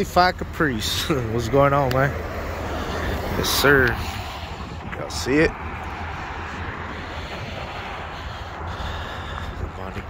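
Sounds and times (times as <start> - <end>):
low engine rumble: 0.0 - 10.0
traffic noise: 0.0 - 10.0.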